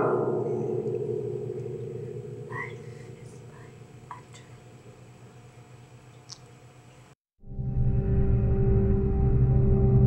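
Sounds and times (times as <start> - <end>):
creepy piano chord ringing: 0.0 - 5.5.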